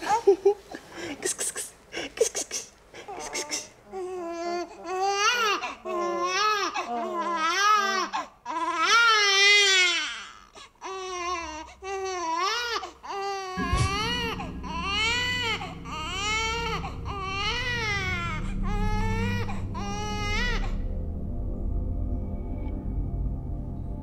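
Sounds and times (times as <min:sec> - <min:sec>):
baby crying: 0:03.1 - 0:20.8
low steady drone: 0:13.6 - 0:24.0.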